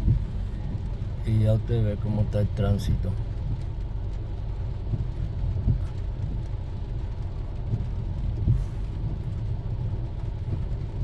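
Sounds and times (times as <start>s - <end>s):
low rumble inside car: 0.0s - 11.0s
rain: 0.0s - 11.0s.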